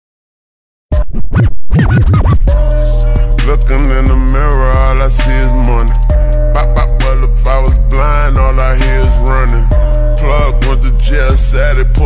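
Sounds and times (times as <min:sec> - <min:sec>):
record scratching: 0:00.9 - 0:02.6
hip hop track: 0:00.9 - 0:12.0.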